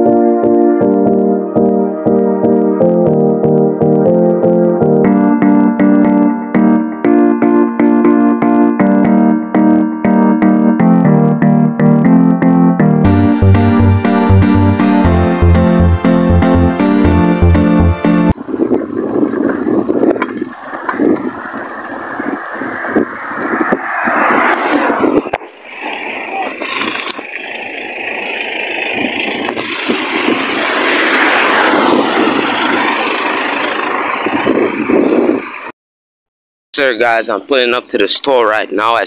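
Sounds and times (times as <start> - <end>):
music with steady beat: 0.0 - 18.4
wind on microphone: 18.4 - 27.5, 28.8 - 35.7
bicycle riding on road: 18.4 - 35.7.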